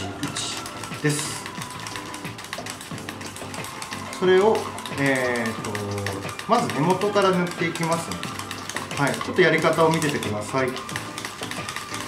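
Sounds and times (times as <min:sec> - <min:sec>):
background music: 0:00.0 - 0:12.0
brush clicking in metal bowl: 0:00.0 - 0:12.0.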